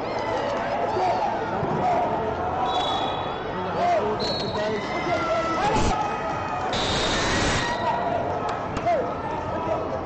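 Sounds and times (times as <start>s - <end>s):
voices shouting in large hall: 0.0s - 10.0s.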